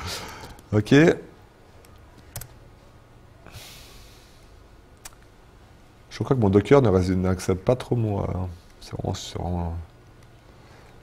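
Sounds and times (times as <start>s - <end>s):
soft breath hiss: 0.0s - 11.0s.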